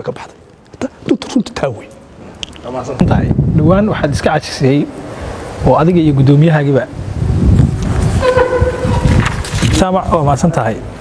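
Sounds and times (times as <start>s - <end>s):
horn steady note: 8.2s - 9.3s.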